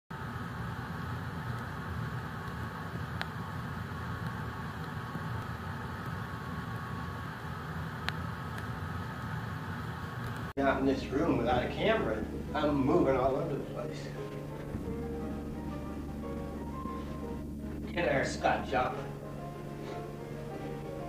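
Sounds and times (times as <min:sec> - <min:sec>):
faint hum: 0:00.1 - 0:21.0
background rumble and hiss: 0:00.2 - 0:21.0.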